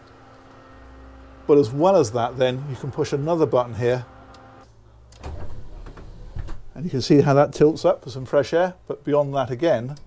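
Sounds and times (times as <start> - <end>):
electric actuator hum: 0.0 - 6.8.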